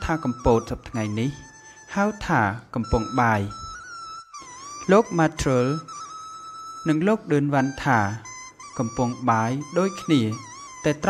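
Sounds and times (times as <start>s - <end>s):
person narrating: 0.0s - 3.8s, 4.4s - 6.1s, 6.8s - 11.0s
soft background music: 0.0s - 11.0s.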